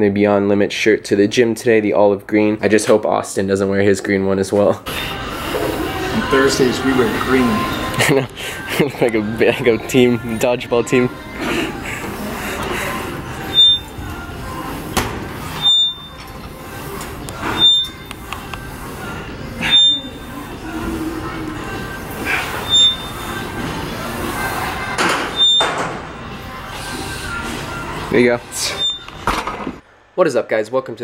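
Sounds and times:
background music: 4.9 - 29.8
exercise machine squeak and knock: 22.6 - 23.3, 25.3 - 25.8, 28.6 - 29.1.

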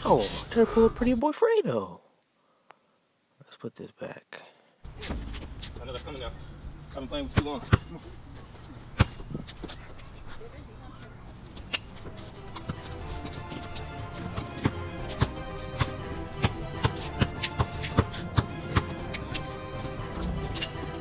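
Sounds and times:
background music: 11.9 - 21.0
basketball dribbling on hard court: 13.6 - 19.0.

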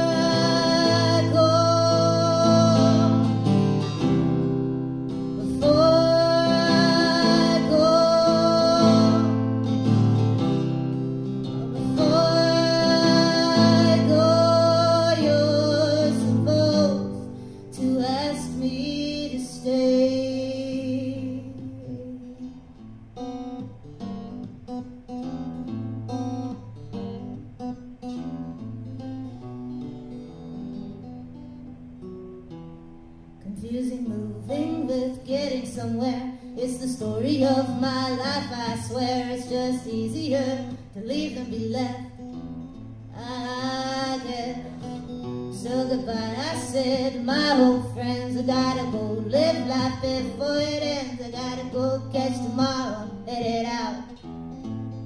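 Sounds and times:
woman singing with vibrato: 0.0 - 3.7, 5.2 - 10.2, 11.5 - 22.8, 33.4 - 42.3, 43.1 - 54.2
acoustic guitar: 0.0 - 55.0.

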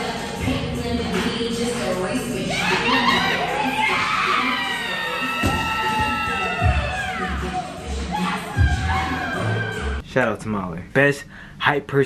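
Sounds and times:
background music: 0.0 - 10.0
people yelling and cheering: 2.4 - 10.0
barbell thudding on floor: 5.4 - 5.8.

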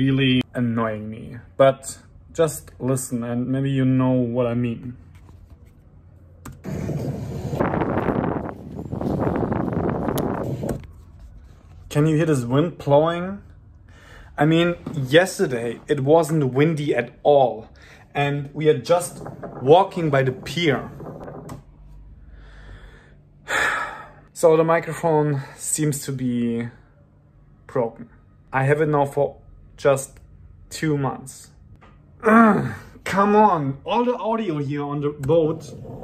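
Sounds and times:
low rumbling microphone noise: 6.1 - 16.2, 17.8 - 23.1
wind-like microphone noise: 6.7 - 11.1.

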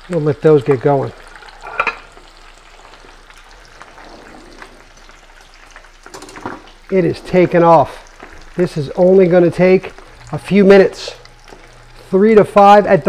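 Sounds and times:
shrimp frying in hot oil: 0.0 - 13.0.

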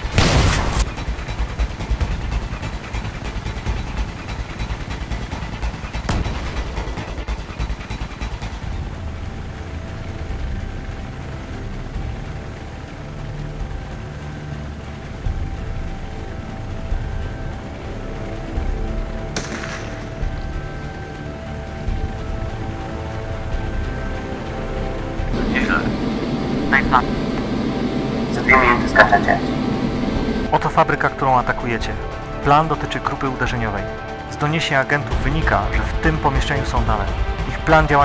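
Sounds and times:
burst of noise: 0.0 - 1.0
sharp crack: 0.0 - 1.3, 19.4 - 20.3
helicopter rotor rumble: 0.0 - 38.0
music with sustained notes: 0.0 - 38.0.

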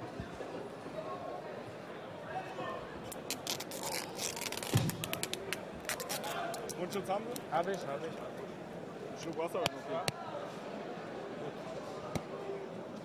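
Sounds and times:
crowd chatter: 0.0 - 13.0
tape ripping off roll: 3.1 - 6.8.

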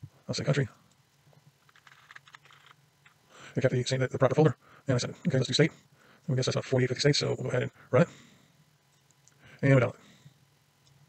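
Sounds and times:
faint keyboard typing: 0.7 - 3.2.

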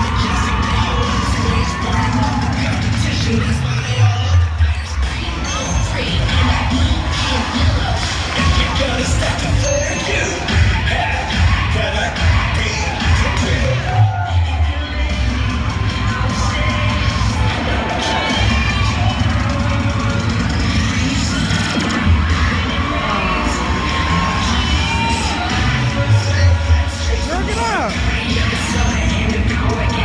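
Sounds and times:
crowd cheering and shouting: 0.0 - 30.0
loud cheerleading music: 0.0 - 30.0.

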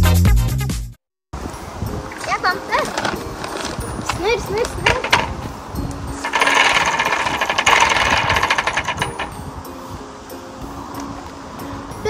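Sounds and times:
prize wheel pointer clicking: 4.0 - 5.4, 6.2 - 9.4.

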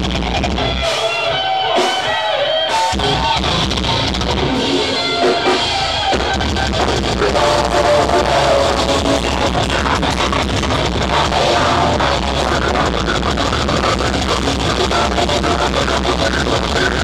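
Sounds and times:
distorted electric guitars: 0.0 - 17.0
fast dense drumming: 2.8 - 17.0.

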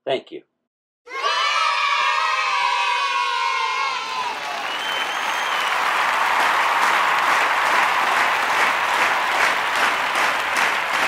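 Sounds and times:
large crowd cheering: 1.1 - 11.0.

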